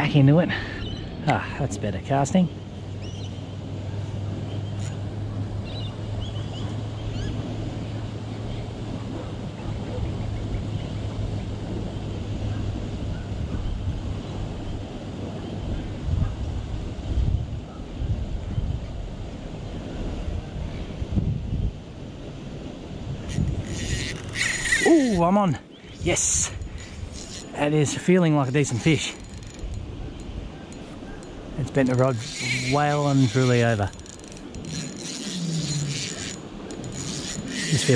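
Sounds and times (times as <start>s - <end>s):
wind buffeting microphone: 2.8s - 37.9s
rushing water from weir: 21.9s - 37.9s.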